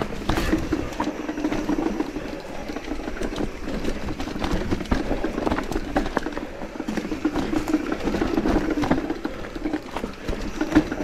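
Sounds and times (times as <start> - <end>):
bike rattling and knocking: 0.0 - 11.0
bike tyres on dirt and leaves: 0.0 - 11.0.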